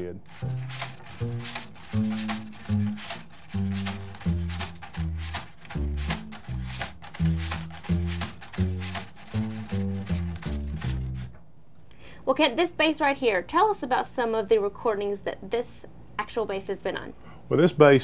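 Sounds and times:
wire brush on drum head: 0:00.0 - 0:11.4.

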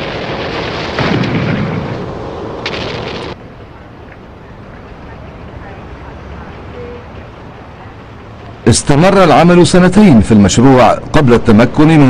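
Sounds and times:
blast deep boom: 0:00.0 - 0:03.3
sharp crack: 0:00.0 - 0:03.4.

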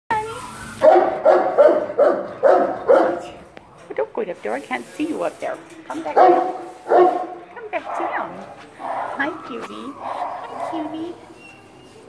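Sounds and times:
dog barking: 0:00.8 - 0:03.4, 0:06.1 - 0:09.3, 0:10.0 - 0:11.2.

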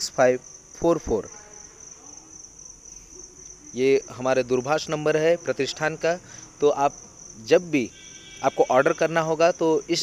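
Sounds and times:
man talking: 0:00.0 - 0:01.6, 0:03.7 - 0:10.0
high-pitched insect drone: 0:00.0 - 0:10.0.

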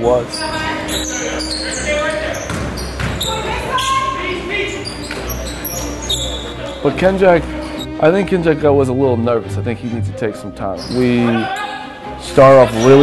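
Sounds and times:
players' voices: 0:00.0 - 0:13.0
basketball bouncing: 0:02.4 - 0:03.6.

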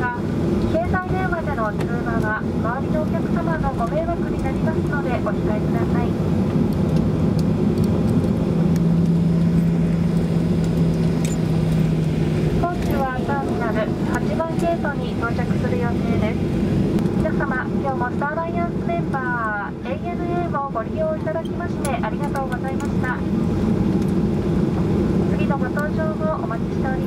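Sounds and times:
cabin announcement voice: 0:00.0 - 0:06.2, 0:12.6 - 0:16.5, 0:17.2 - 0:23.3, 0:25.3 - 0:27.0
airplane engines idling hum: 0:00.0 - 0:27.0.

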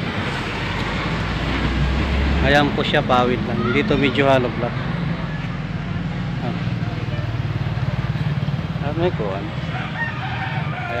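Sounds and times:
low hum of road vehicles: 0:00.0 - 0:11.0
rooster crowing: 0:09.6 - 0:11.0.

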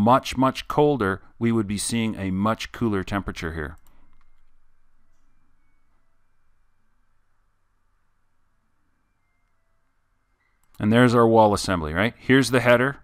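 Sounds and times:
low hum: 0:00.0 - 0:10.9.

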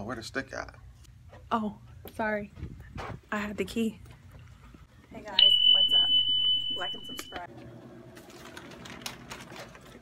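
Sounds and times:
high-pitched electronic beep: 0:05.4 - 0:07.5.

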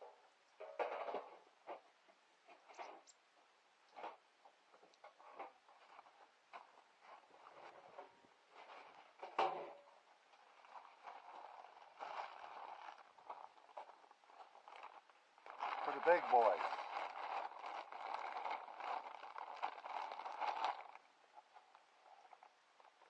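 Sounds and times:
rustling: 0:03.9 - 0:23.0
light clicks and knocks on metal cans: 0:07.6 - 0:09.9.

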